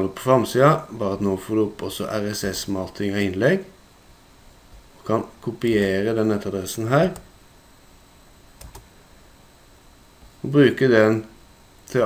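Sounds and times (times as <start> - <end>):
faint room noise: 0.0 - 12.0
computer mouse clicks: 8.6 - 8.9.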